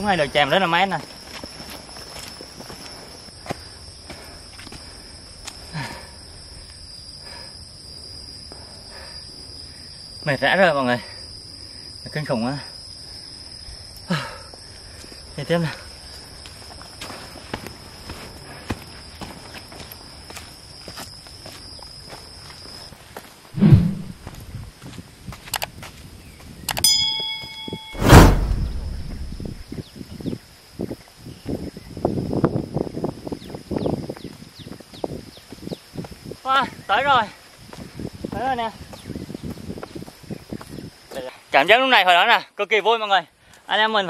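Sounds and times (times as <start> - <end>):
footsteps on dirt trail: 0.0 - 5.7, 16.0 - 28.0, 33.6 - 36.3, 37.4 - 41.3
high insect chirp: 0.0 - 44.0
loud thuds: 27.8 - 29.6.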